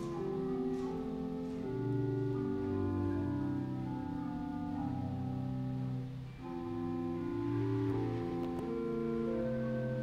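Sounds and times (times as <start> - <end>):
organ playing slow chords: 0.0 - 10.0.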